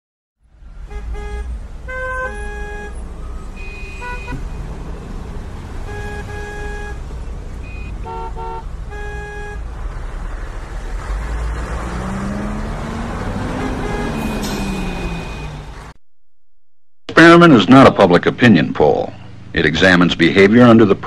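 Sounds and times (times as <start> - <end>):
traffic engine rumble: 0.4 - 16.0, 17.1 - 21.0
car horns honking: 0.8 - 9.8, 11.6 - 15.9.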